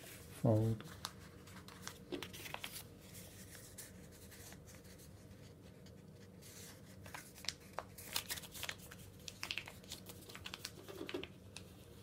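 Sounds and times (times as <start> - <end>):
paper being folded and creased: 0.0 - 12.0.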